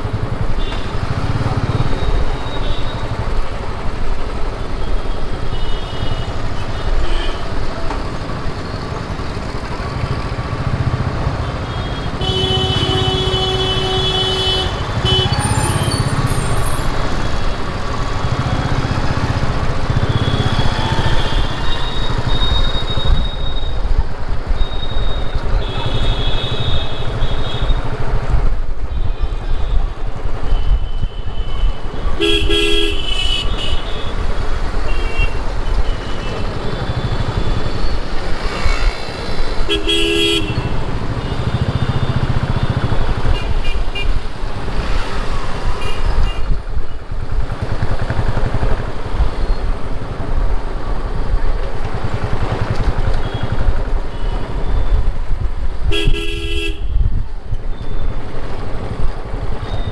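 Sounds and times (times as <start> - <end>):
road and wind noise: 0.0 - 59.9
vehicle horn honking: 11.7 - 15.5, 39.7 - 42.1, 55.9 - 57.0.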